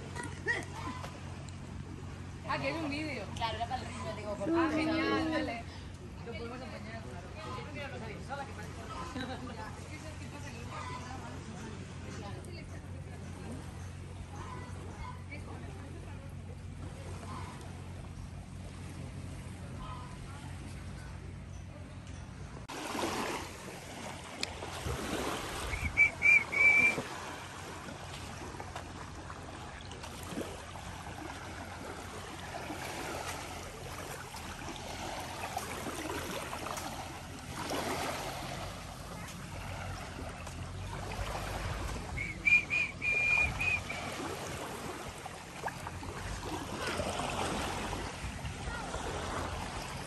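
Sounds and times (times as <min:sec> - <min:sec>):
small waves washing on sand: 0:22.6 - 0:50.0
high whistle: 0:25.7 - 0:27.1, 0:42.2 - 0:44.2.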